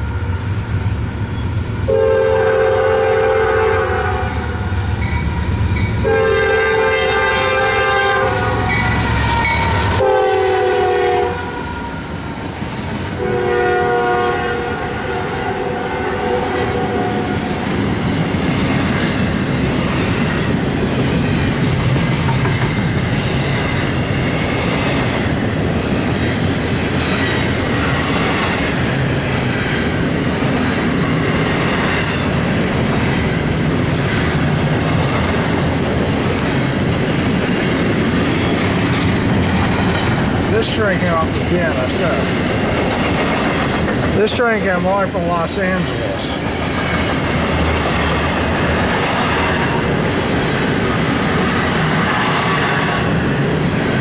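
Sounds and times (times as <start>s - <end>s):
train rumble and wheel clatter: 0.0s - 54.0s
locomotive air horn blasts: 1.9s - 4.6s, 6.0s - 12.0s, 13.2s - 17.3s.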